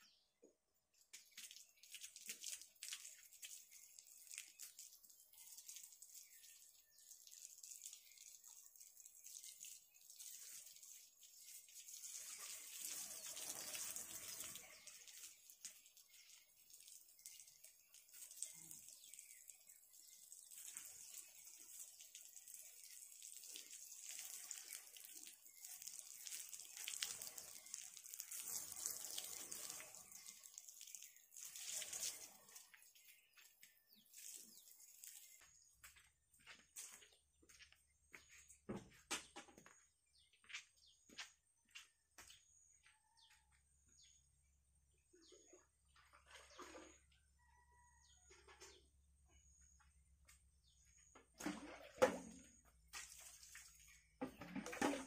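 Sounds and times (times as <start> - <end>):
hose water spraying on concrete: 1.0 - 37.2, 51.4 - 55.0.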